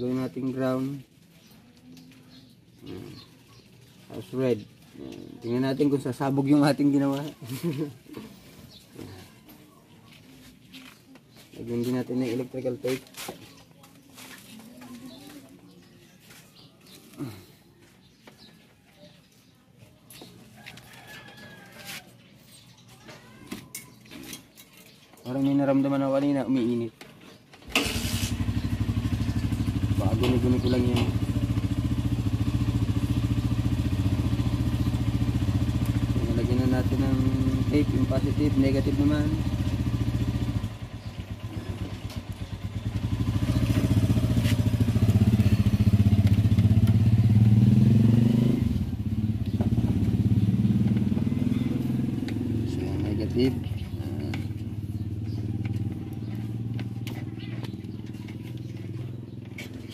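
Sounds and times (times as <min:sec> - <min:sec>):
engine running: 0:27.7 - 0:59.9.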